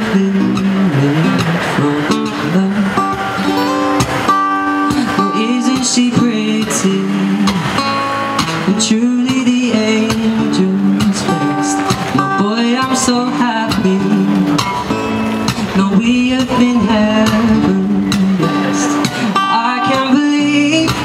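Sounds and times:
man singing into a microphone: 0.0s - 4.0s, 4.8s - 21.0s
strummed acoustic guitar: 0.0s - 21.0s.

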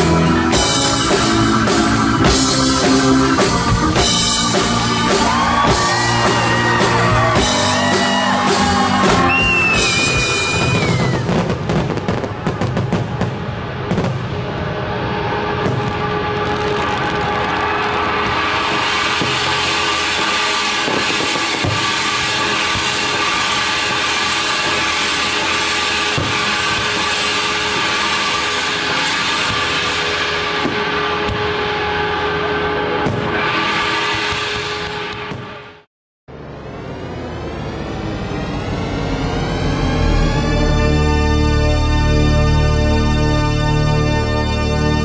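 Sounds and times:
music: 0.0s - 35.9s, 37.3s - 45.0s
fireworks bangs: 0.0s - 42.1s.

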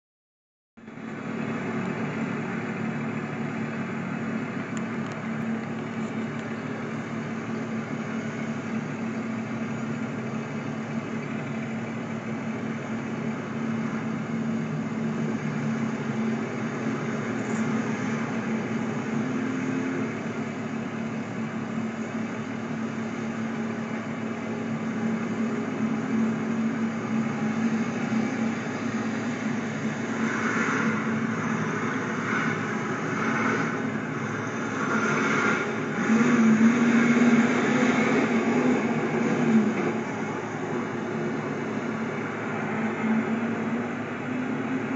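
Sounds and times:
road traffic passing: 0.8s - 44.9s
steady engine hum: 0.8s - 44.9s.

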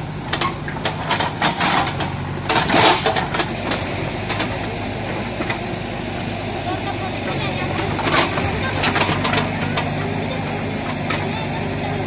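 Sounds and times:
engine idling: 0.0s - 12.0s
loud clatter: 0.3s - 4.7s, 7.7s - 11.4s.

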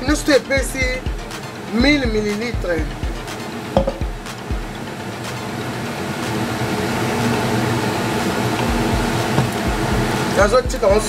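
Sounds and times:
low hum: 2.8s - 10.4s
stew pot hissing: 3.3s - 10.5s.

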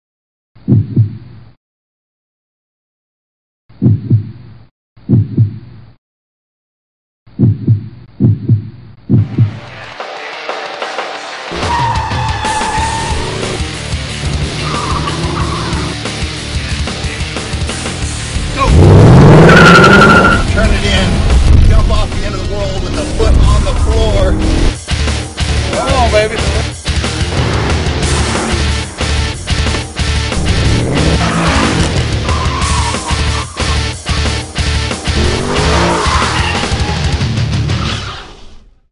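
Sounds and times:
heartbeat double thumps: 0.6s - 1.3s, 3.8s - 4.4s, 5.0s - 5.7s, 7.3s - 9.7s
tyre squeal: 11.6s - 13.5s, 19.4s - 20.5s, 35.6s - 37.2s
car engine revving hard: 18.3s - 20.3s, 30.2s - 32.3s, 35.0s - 36.3s.

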